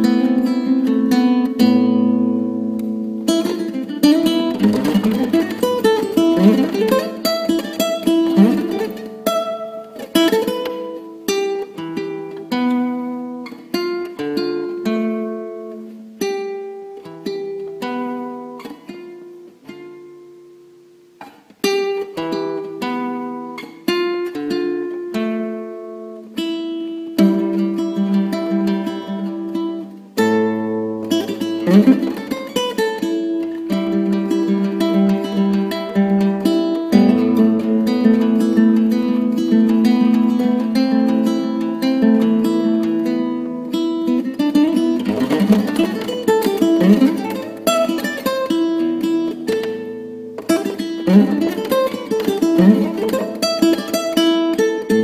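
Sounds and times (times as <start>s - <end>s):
plucked string instrument: 0.0s - 55.0s.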